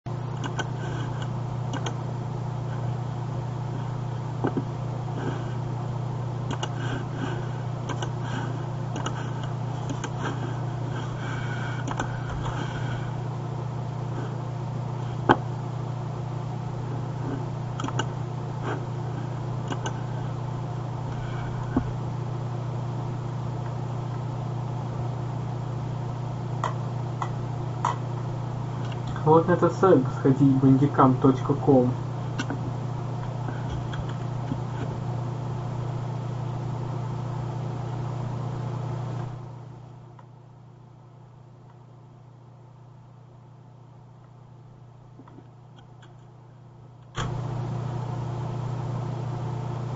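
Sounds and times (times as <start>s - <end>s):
low electrical hum with hiss: 0.1s - 49.9s.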